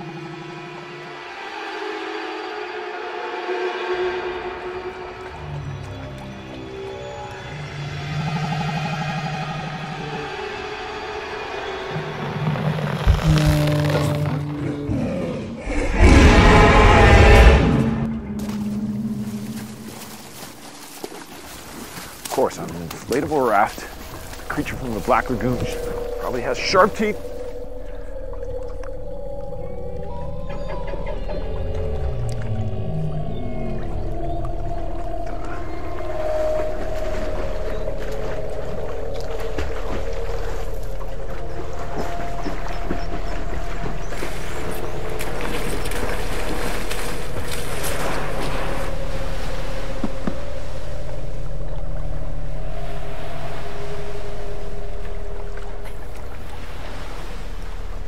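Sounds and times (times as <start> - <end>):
low tones sliding in pitch: 0.0 - 20.6, 24.2 - 56.5
low drone: 0.0 - 20.8, 23.6 - 58.0.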